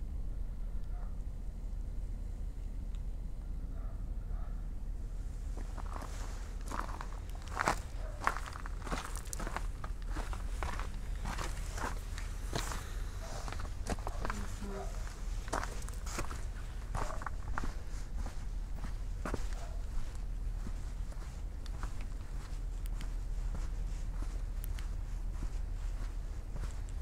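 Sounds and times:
steady low rumble: 0:00.0 - 0:27.0
footsteps on grass: 0:05.5 - 0:27.0.

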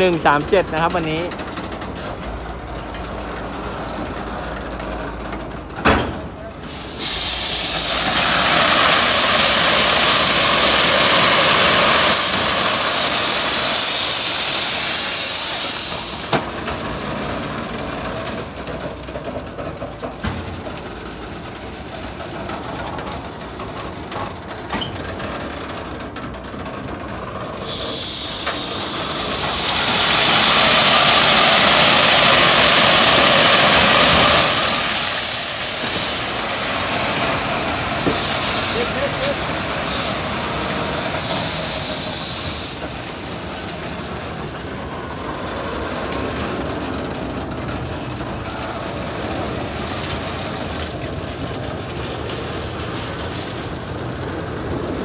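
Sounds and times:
stone discharging rushing hiss: 0:06.6 - 0:16.4, 0:27.6 - 0:42.9
wagons rumbling: 0:07.5 - 0:55.0.

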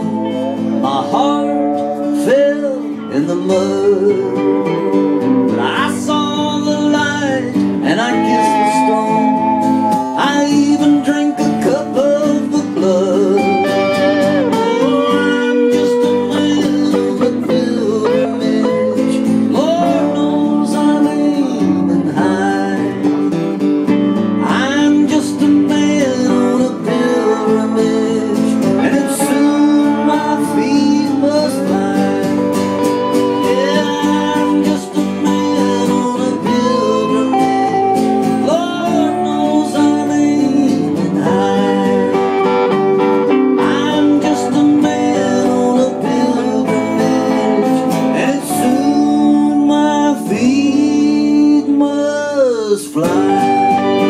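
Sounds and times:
mandolin melody: 0:00.0 - 0:05.8, 0:07.4 - 0:20.4, 0:26.1 - 0:49.7
strummed acoustic guitar: 0:00.0 - 0:54.0.

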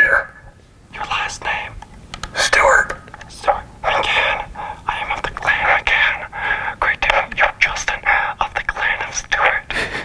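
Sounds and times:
man whispering into megaphone: 0:00.9 - 0:09.7.

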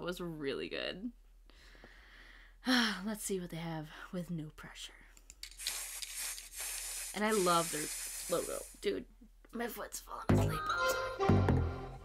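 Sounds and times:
steady hiss: 0:05.4 - 0:08.9.

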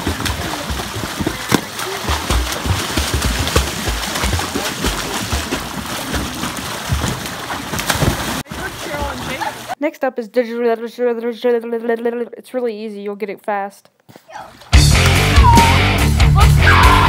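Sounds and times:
pool water splashing: 0:00.0 - 0:09.8
short sharp splashes: 0:00.0 - 0:09.8.

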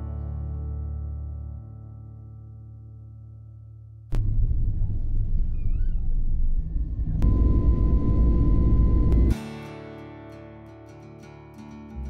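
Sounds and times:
jet engines rumbling: 0:04.2 - 0:09.3
thin steady whine: 0:04.2 - 0:09.4.

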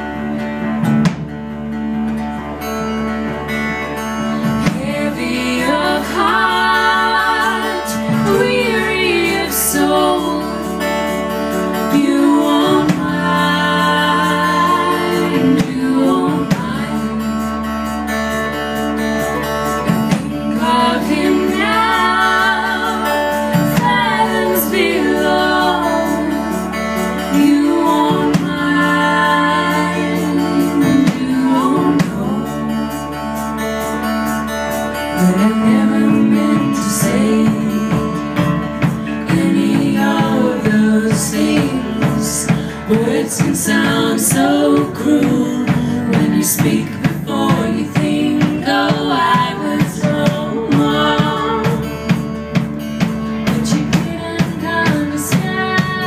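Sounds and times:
electric guitar: 0:00.0 - 0:56.0
keyboard: 0:00.0 - 0:56.0
women singing in harmony: 0:04.3 - 0:18.2, 0:19.8 - 0:33.4, 0:35.1 - 0:52.4, 0:53.4 - 0:56.0.

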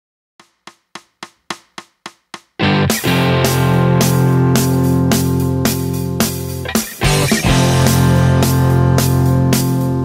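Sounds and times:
percussive count-in clicks: 0:00.4 - 0:03.2.

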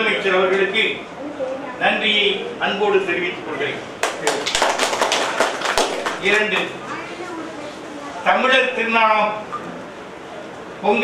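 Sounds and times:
people clapping: 0:04.0 - 0:06.8.

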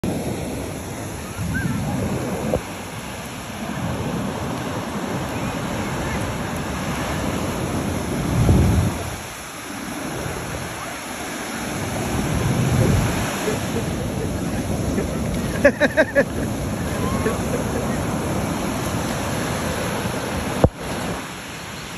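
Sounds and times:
ocean surf breaking: 0:00.0 - 0:21.9
wind rumbling on microphone: 0:00.0 - 0:21.9.

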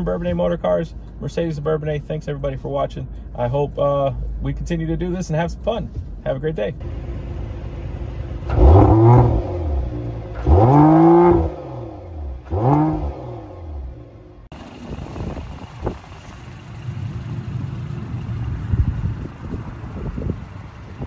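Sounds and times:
car engine revving: 0:06.8 - 0:21.0
low rumble: 0:11.5 - 0:21.0
wind noise on microphone: 0:14.7 - 0:16.2, 0:18.4 - 0:21.0.

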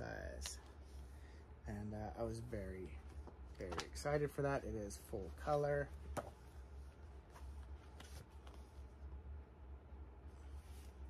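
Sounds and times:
book pages rustling: 0:02.9 - 0:04.2, 0:05.2 - 0:09.0, 0:10.3 - 0:11.0.

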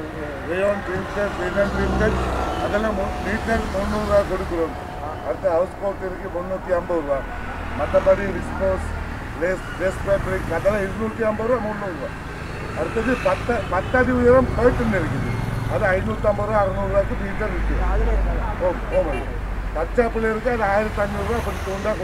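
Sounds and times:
voices talking: 0:00.0 - 0:22.0.

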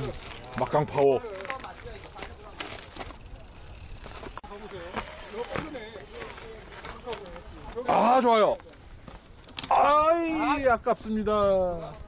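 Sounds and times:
mountain bike rattling over roots: 0:00.0 - 0:10.2.

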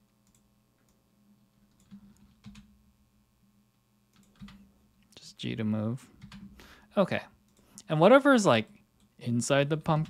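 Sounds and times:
low steady hum: 0:00.0 - 0:10.0
keyboard and mouse clicks: 0:00.2 - 0:01.0, 0:01.7 - 0:02.7, 0:04.1 - 0:04.6.

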